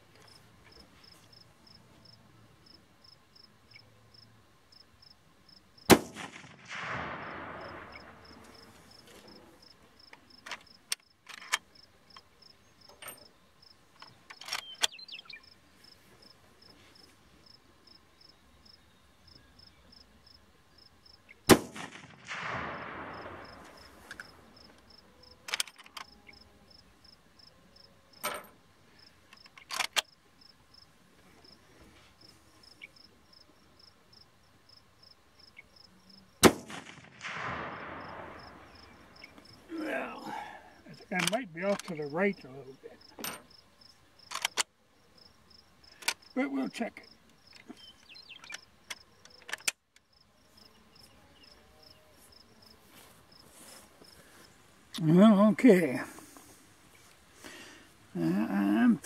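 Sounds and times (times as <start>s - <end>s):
crickets chirping: 0.0s - 59.0s
rifle shots with rolling echo: 5.9s - 9.6s, 21.5s - 25.0s, 36.4s - 40.6s.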